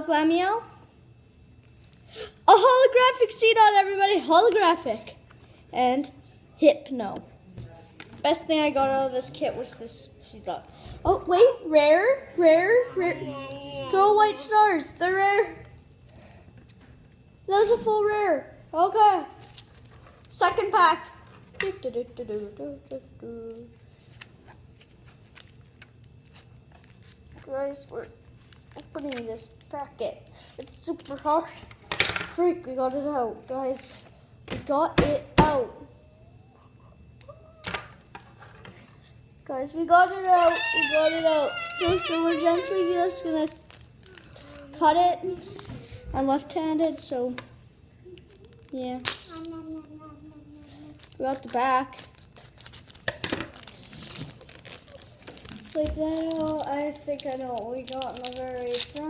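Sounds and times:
foil wrapper crinkling: 24.7 - 27.6, 28.2 - 29.8, 40.0 - 44.8, 48.2 - 49.6, 50.8 - 59.0.

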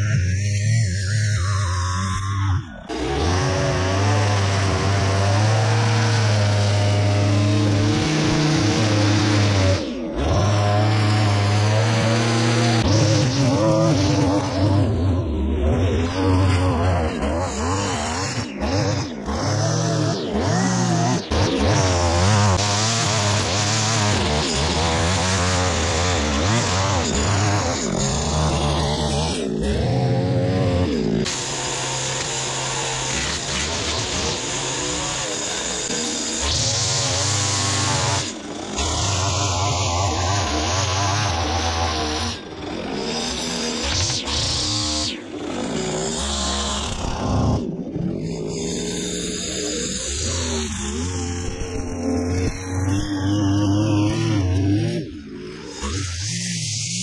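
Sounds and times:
string trimmer cutting grass: 0.0 - 57.0.

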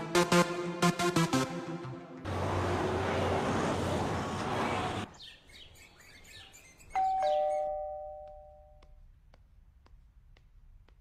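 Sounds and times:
background music: 0.0 - 2.3
doorbell chiming ding-dong: 7.0 - 8.8.

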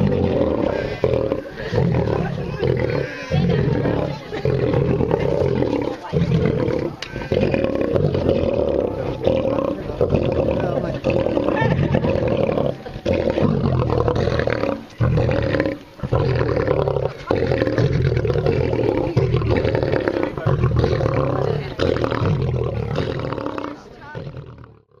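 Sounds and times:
lions roaring: 0.0 - 25.0.

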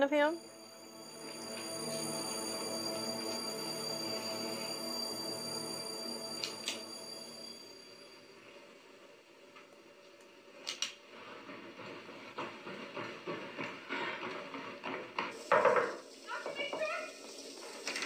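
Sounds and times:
horror film music: 0.0 - 8.8.

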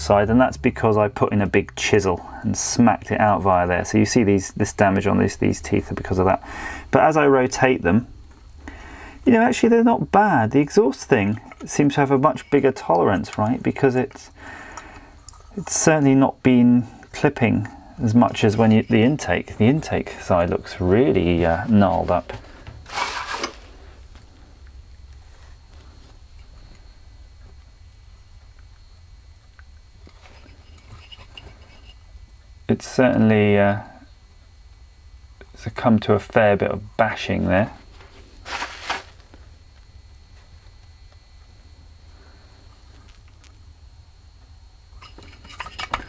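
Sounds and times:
low hum: 0.0 - 46.0.

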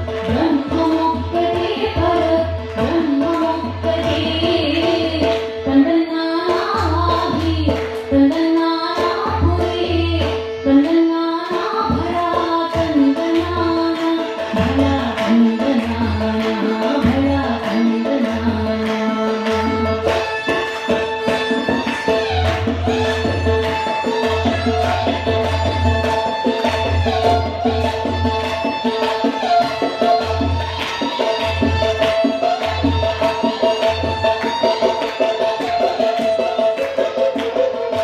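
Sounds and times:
tabla drumming: 0.0 - 38.0
violin: 0.0 - 38.0.

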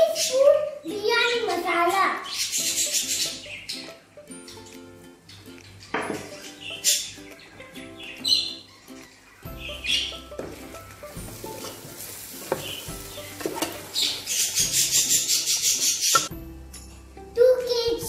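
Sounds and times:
background music: 0.2 - 18.0
parrot calling: 2.2 - 10.4, 12.6 - 16.3
wooden spoon scraping metal pot: 10.4 - 15.2.

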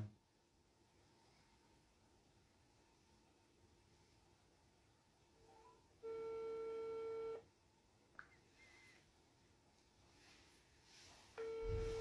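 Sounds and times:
telephone ringback tone: 6.0 - 7.4, 11.4 - 12.0.

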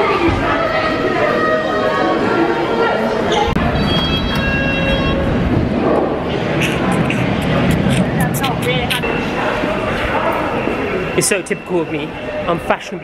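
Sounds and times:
indistinct voices: 0.0 - 13.0
underground train rumble: 3.5 - 12.4.

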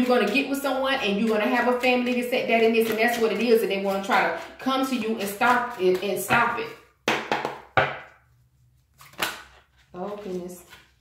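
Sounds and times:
cards being shuffled: 8.6 - 11.0.

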